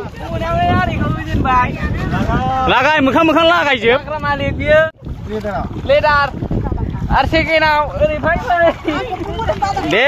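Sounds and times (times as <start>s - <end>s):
men talking and laughing: 0.0s - 10.0s
wind rumbling on microphone: 0.0s - 10.0s.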